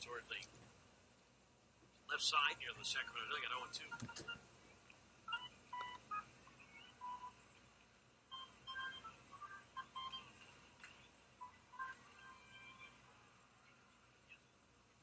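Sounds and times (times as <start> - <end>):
faint electronic pa music: 2.1 - 15.0.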